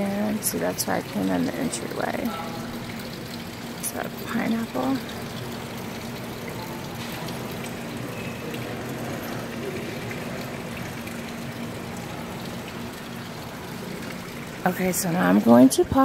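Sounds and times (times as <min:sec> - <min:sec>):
faint steady hum: 0:00.0 - 0:16.0
fountain water trickling and splashing: 0:00.0 - 0:16.0.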